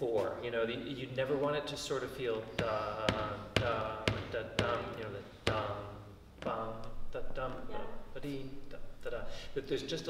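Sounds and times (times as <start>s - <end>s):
man singing dum syllables: 2.5s - 9.0s.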